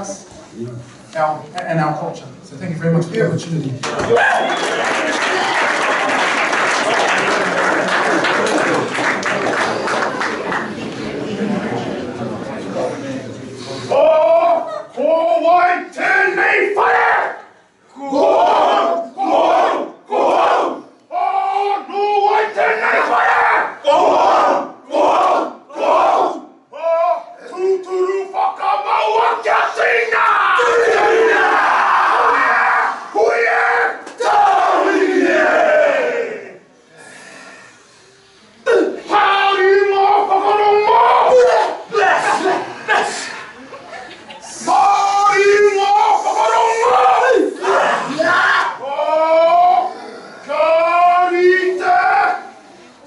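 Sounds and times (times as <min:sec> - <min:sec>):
men shouting a chant in unison: 0:28.2 - 0:36.6, 0:44.6 - 0:52.5.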